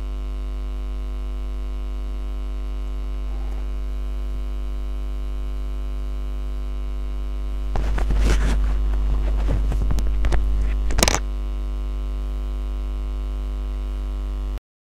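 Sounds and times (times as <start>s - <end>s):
electrical mains hum: 0.0s - 14.6s
loud burst of noise: 1.4s - 11.3s.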